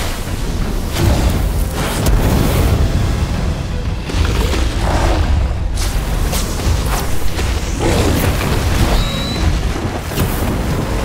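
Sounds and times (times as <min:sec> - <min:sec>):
background score music: 0:00.0 - 0:11.0.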